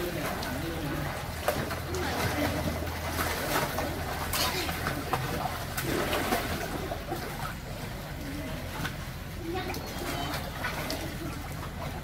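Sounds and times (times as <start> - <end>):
children splashing in pool: 0.0 - 12.0.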